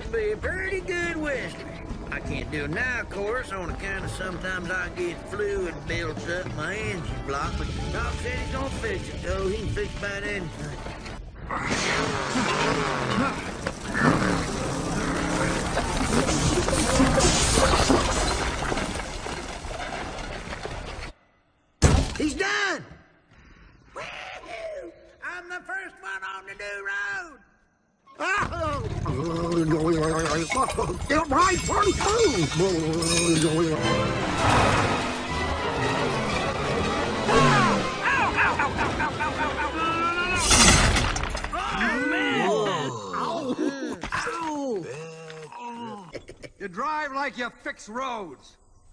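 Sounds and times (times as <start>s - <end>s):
background music: 0.0s - 17.6s, 28.3s - 42.7s
loud crash: 34.1s - 39.6s, 40.2s - 41.6s.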